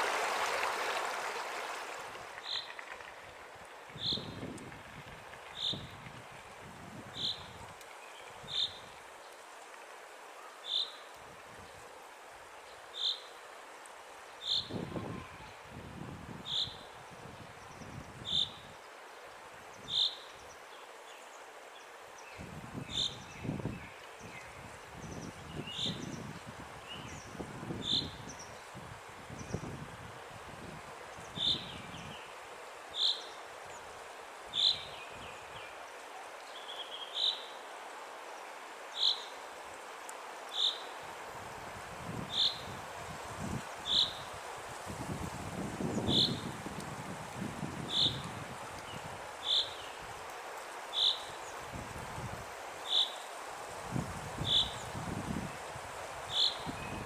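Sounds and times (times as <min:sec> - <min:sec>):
waterfall rushing onto rock: 0:00.0 - 0:03.4.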